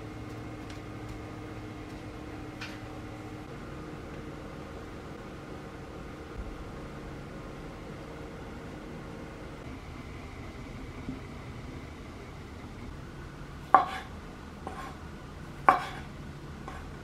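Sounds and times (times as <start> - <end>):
steady low hum: 0.0 - 17.0
knife striking cutting board: 15.7 - 16.0.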